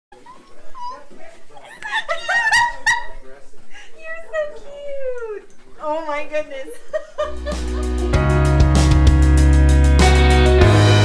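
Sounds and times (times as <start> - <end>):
music with low bass notes: 7.3 - 11.0.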